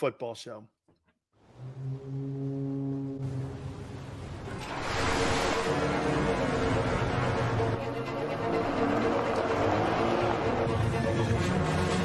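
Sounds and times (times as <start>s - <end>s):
deep sustained horn tone: 1.5s - 4.0s.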